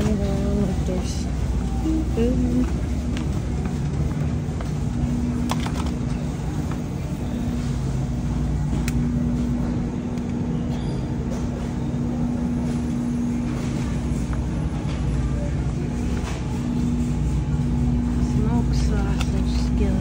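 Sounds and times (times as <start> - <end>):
refrigerator hum: 0.0 - 20.0.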